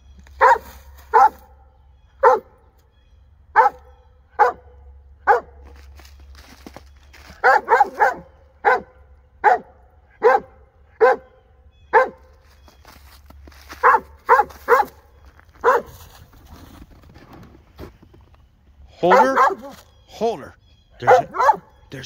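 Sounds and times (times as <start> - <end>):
dog barking: 0.4 - 1.6, 2.2 - 2.6, 3.5 - 5.6, 7.4 - 12.3, 13.8 - 15.0, 15.6 - 16.0, 19.0 - 19.8, 21.0 - 21.8.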